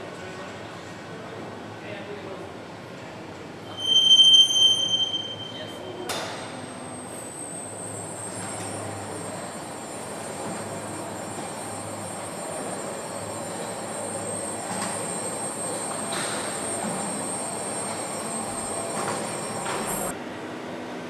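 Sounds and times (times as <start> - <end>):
factory transfer carriage whining: 3.5 - 21.0
sharp clicks and squeals: 3.7 - 6.6.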